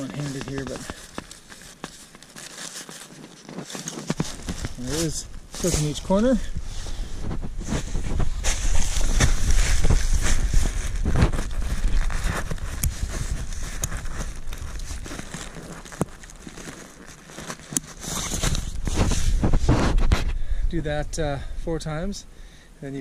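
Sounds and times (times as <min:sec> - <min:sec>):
tent fabric rustling: 0:00.0 - 0:20.4.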